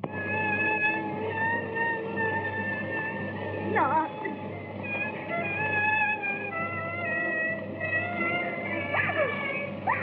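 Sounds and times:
background film music: 0.0 - 10.0.

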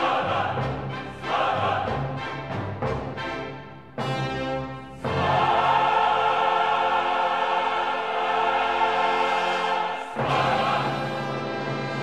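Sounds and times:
opera chorus with orchestra: 0.0 - 12.0.

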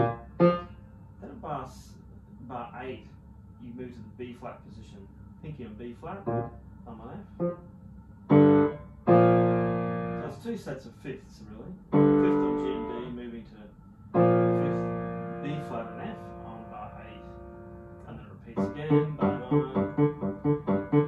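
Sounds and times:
grand piano chords: 0.0 - 0.8, 6.2 - 6.6, 7.3 - 7.7, 8.3 - 10.5, 11.9 - 13.4, 14.1 - 21.0.

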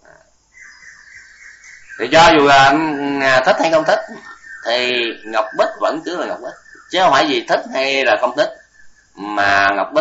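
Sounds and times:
man speaking: 2.0 - 8.6, 9.2 - 10.0.

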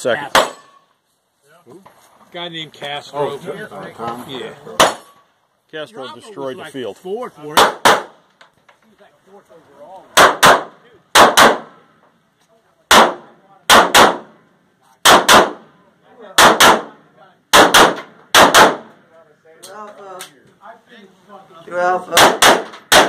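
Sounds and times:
pistol shots: 0.3 - 0.8, 4.8 - 5.2, 7.6 - 8.2, 10.2 - 11.8, 12.9 - 14.4, 15.0 - 15.7, 16.4 - 18.9, 22.1 - 23.0.

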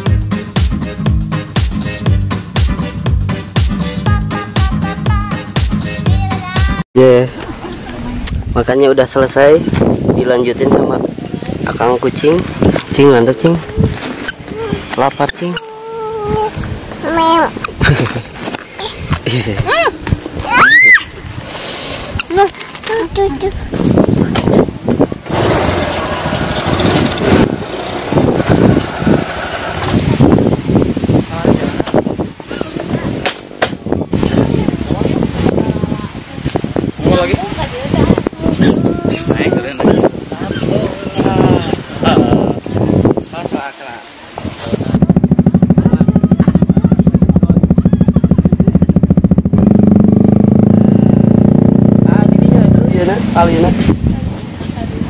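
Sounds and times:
motorcycle engine revving: 24.7 - 31.0, 44.5 - 55.0.

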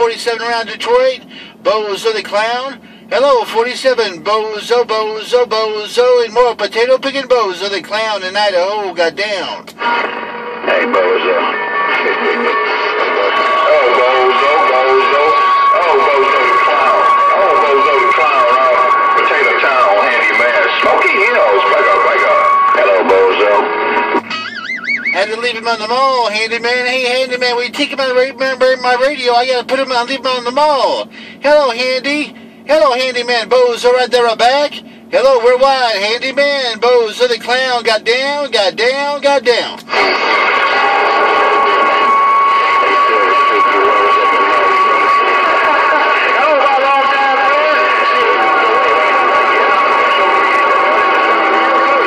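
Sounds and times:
garbled radio voices: 0.0 - 52.0
radio hiss: 9.6 - 24.3, 39.8 - 52.0
steady radio whistle: 9.6 - 36.4, 39.8 - 52.0
fast warbling tone: 9.8 - 27.2, 39.9 - 52.0
steady whistling tone: 11.8 - 23.1, 24.3 - 25.2, 40.7 - 46.1.

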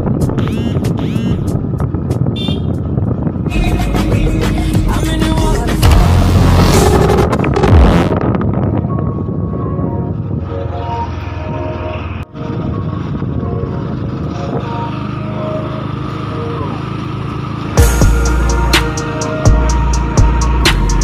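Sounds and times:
motorbike engine and wind rumble: 0.0 - 21.0.

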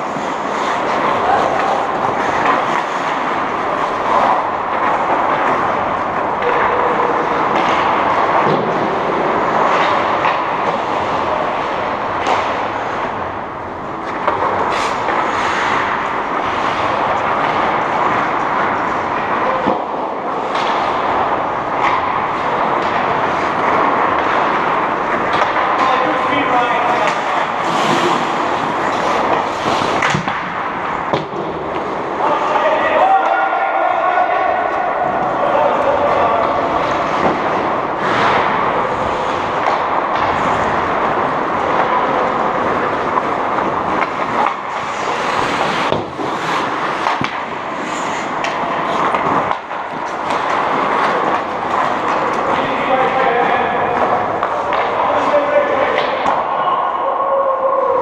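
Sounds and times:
hockey sticks and puck clacking: 0.0 - 58.0
steady rush of rink noise: 0.0 - 58.0
players shouting: 0.4 - 8.4, 32.1 - 41.0, 48.2 - 58.0.

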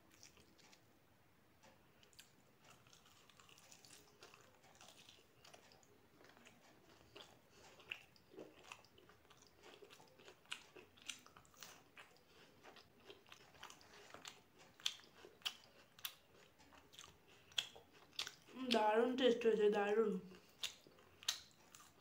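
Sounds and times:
chewing and soft crunches: 0.0 - 0.9, 1.6 - 19.6, 20.2 - 22.0
person speaking: 18.5 - 20.3
wet mouth clicks: 20.3 - 22.0.

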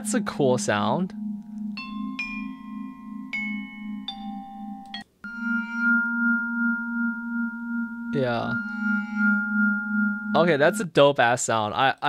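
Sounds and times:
vibraphone notes ringing: 0.0 - 10.9
chord of long steady tones: 0.0 - 11.0
low pulsing note: 0.0 - 11.0.

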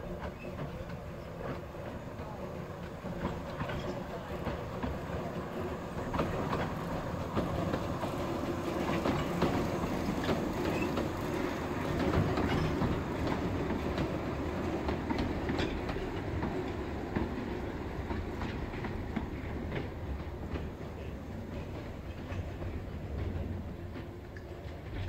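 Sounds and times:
steam train rumbling: 0.0 - 25.0
wheels clicking over rail joints: 0.0 - 25.0.

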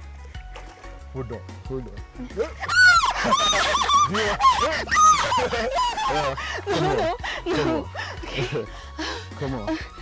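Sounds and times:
background music: 0.0 - 10.0
woman shrieking: 2.6 - 6.4.

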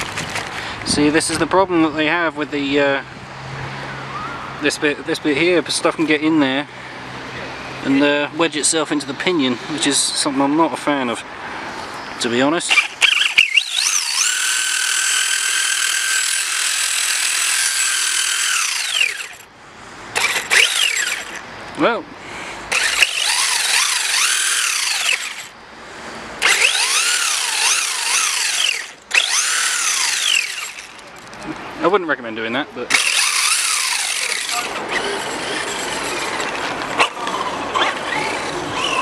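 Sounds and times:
electric motor whining: 12.7 - 19.5, 20.1 - 21.4, 22.7 - 25.5, 26.4 - 31.1, 32.9 - 39.0.

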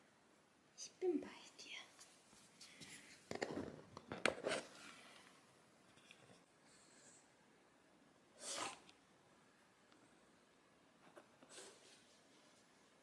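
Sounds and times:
person whispering softly: 0.8 - 3.1.

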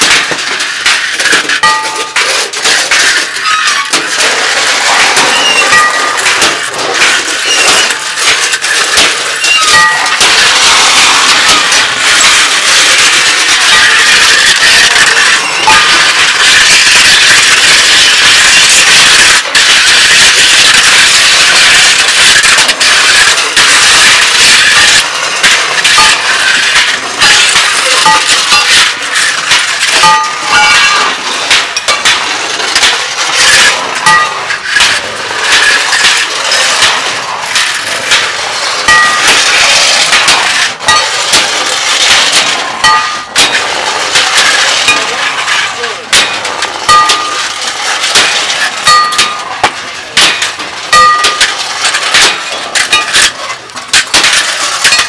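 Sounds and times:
metal clanks: 0.0 - 55.0
metal scraping over paving: 0.0 - 55.0.

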